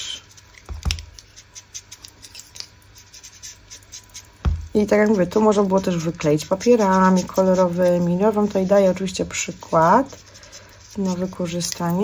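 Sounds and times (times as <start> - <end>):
sponge scratching on paper: 1.2 - 2.4, 3.0 - 12.0.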